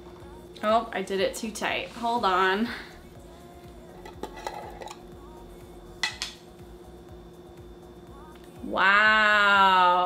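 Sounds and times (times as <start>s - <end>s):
jar lid scraping and clicking: 4.0s - 5.0s.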